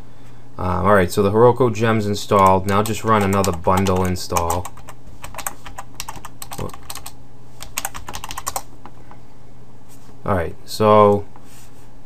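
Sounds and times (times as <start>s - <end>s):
computer keyboard typing: 2.4s - 8.7s.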